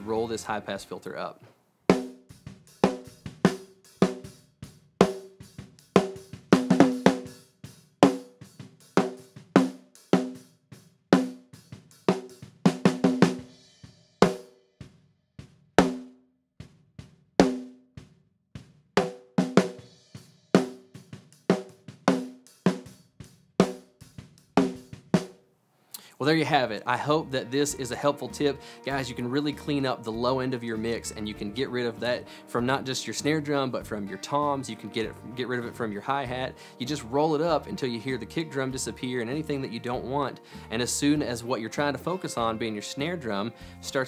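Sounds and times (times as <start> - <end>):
kick drum: 14.8 - 19.3.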